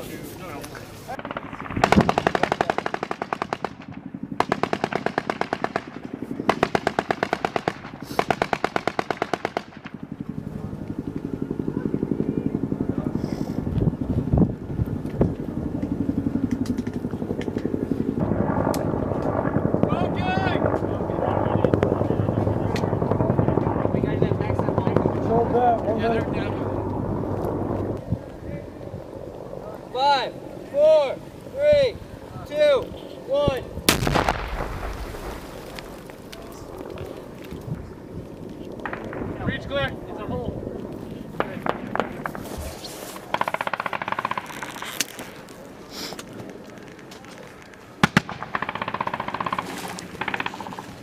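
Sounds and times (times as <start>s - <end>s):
single gunshots: 33.9s - 35.7s.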